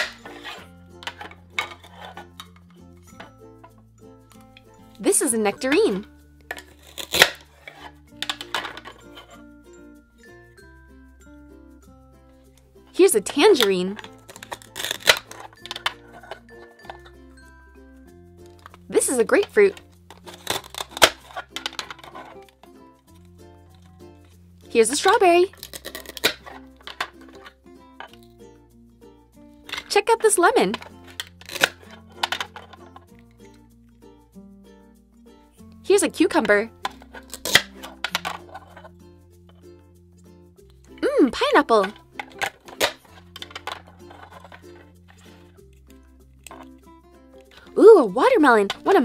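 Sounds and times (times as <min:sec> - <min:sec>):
light background music: 0:00.0 - 0:49.0
velcro ripping: 0:06.7 - 0:07.5, 0:37.2 - 0:37.8.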